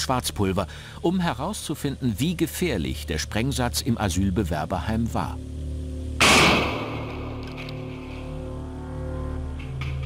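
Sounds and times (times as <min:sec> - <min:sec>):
background music with held tones: 0:00.0 - 0:10.0
explosive charge bang: 0:06.2 - 0:07.4.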